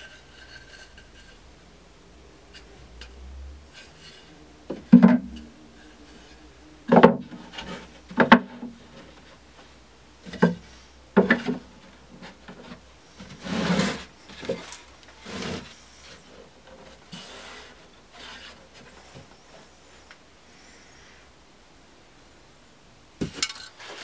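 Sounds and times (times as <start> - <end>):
board sliding and scraping: 0.0 - 1.5, 2.5 - 19.7.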